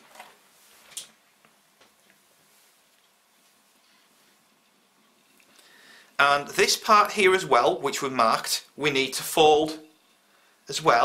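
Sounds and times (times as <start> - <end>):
wood rustling on fabric: 0.0 - 5.4.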